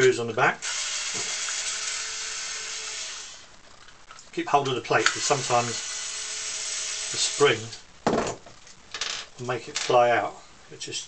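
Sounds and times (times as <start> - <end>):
power drill-driver running: 0.6 - 3.4, 5.0 - 7.8.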